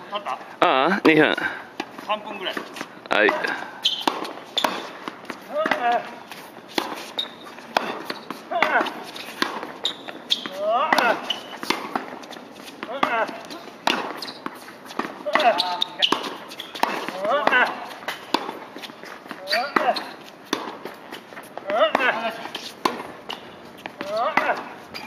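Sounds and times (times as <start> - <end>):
tennis balls struck with rackets: 1.8 - 25.0
people talking: 2.1 - 3.6, 5.5 - 6.1, 8.5 - 8.9, 10.5 - 11.3, 15.2 - 16.1, 17.1 - 17.9, 21.6 - 22.5, 24.0 - 24.7.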